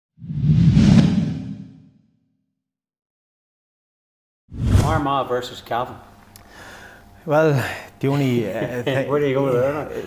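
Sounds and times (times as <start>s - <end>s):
whoosh with deep rumble: 0.2s - 1.8s.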